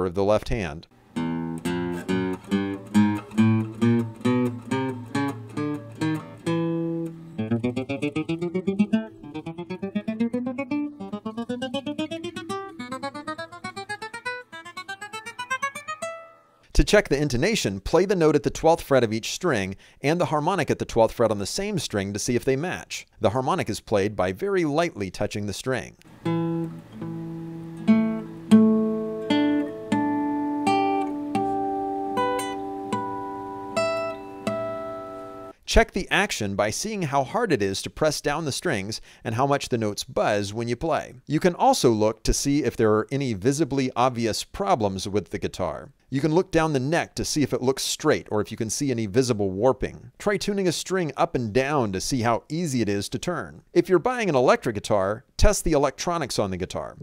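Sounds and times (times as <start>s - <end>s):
acoustic guitar single notes: 1.1s - 16.6s, 26.0s - 35.6s.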